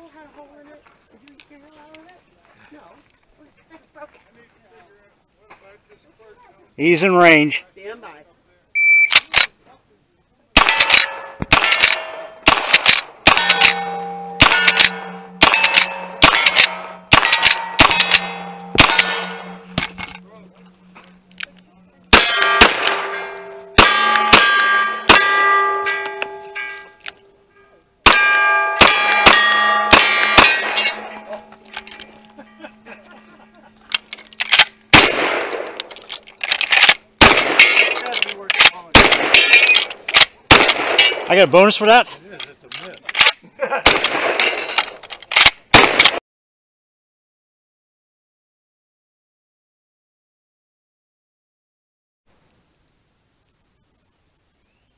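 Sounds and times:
gunshots: 0:10.6 - 0:20.4, 0:22.1 - 0:26.4, 0:28.0 - 0:32.0, 0:34.4 - 0:41.5, 0:43.2 - 0:46.2
heavy shotgun shots: 0:10.6 - 0:20.4, 0:22.1 - 0:26.3, 0:28.0 - 0:32.2, 0:33.9 - 0:41.7, 0:43.1 - 0:46.2
steel target clanging: 0:10.6 - 0:41.8.

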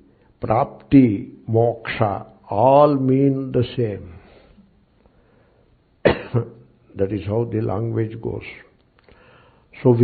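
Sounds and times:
man coughing: 0:06.0 - 0:06.6.

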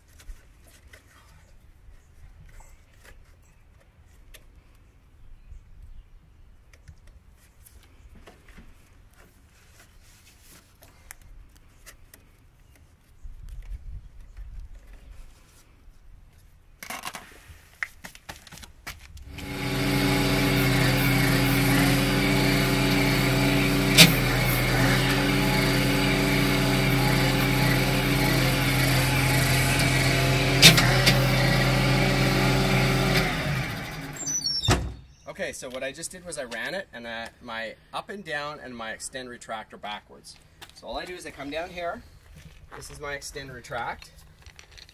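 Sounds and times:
loud mechanical hydraulic drone: 0:19.3 - 0:35.0
sharp clicks: 0:27.8 - 0:31.6.

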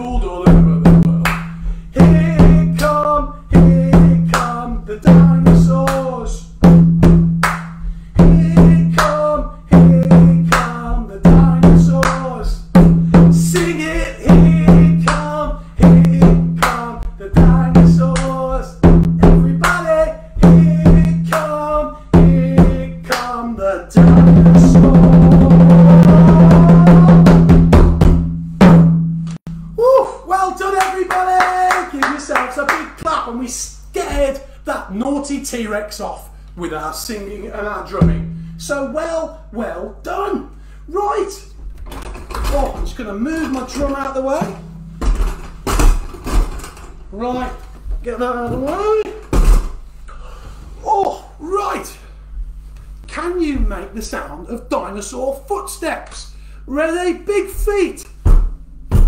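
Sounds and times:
hand drum played with bare hands: 0:00.1 - 0:02.8, 0:03.5 - 0:04.5, 0:06.6 - 0:19.8, 0:20.4 - 0:21.4, 0:24.0 - 0:29.2, 0:38.0 - 0:38.4.

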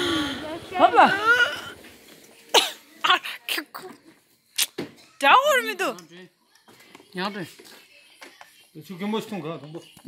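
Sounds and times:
person breathy voice bursts: 0:00.0 - 0:01.8.

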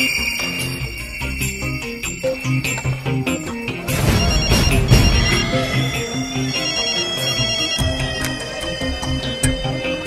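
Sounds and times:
mobile phone melodic ringtone: 0:00.0 - 0:09.3.

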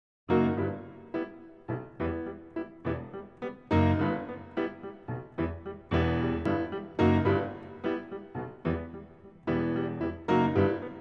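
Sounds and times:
piano chords: 0:00.3 - 0:11.0.

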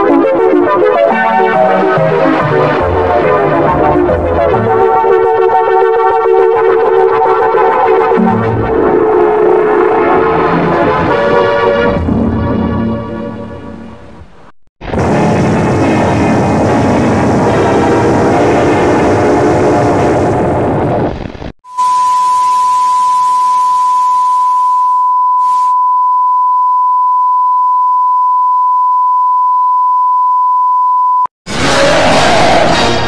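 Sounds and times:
loud distorted logo music: 0:31.5 - 0:33.0.

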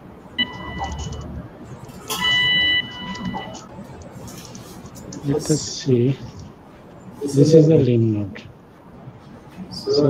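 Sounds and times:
electrosurgical generator tone: 0:00.0 - 0:08.8.

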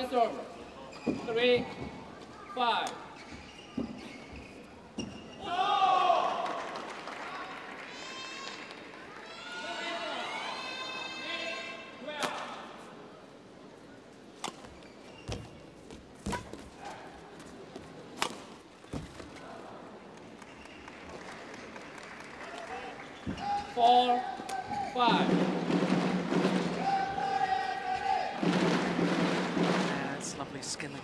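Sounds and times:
racket striking shuttlecock: 0:18.2 - 0:18.5.

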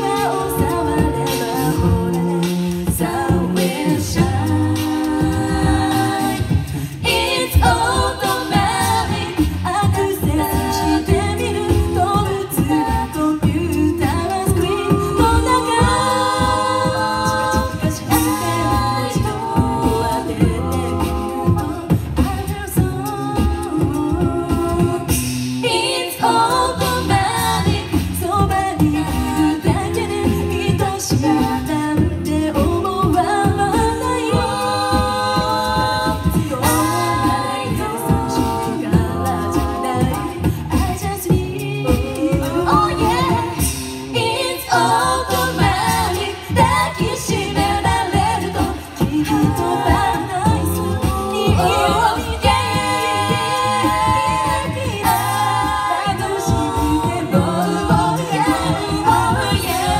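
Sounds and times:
a cappella group singing: 0:00.0 - 0:59.9
steady percussive beat: 0:00.0 - 0:59.9.

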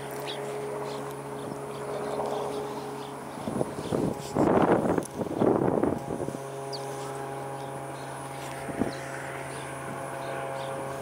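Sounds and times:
distant motor humming: 0:00.0 - 0:11.0.

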